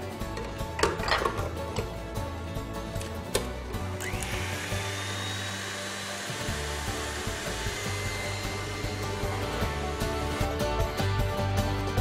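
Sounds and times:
stand mixer motor whine: 0:04.0 - 0:10.7.

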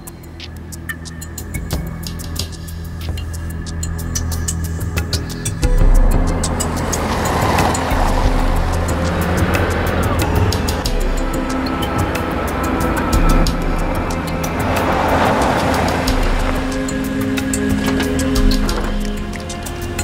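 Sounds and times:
dramatic score music: 0:00.0 - 0:20.0
car tyres sliding on gravel: 0:06.2 - 0:11.0, 0:11.6 - 0:20.0.

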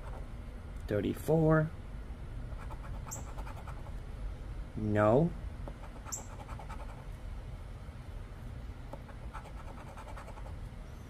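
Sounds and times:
coin scratching lottery ticket: 0:02.6 - 0:03.9, 0:05.7 - 0:07.0, 0:09.0 - 0:10.5.

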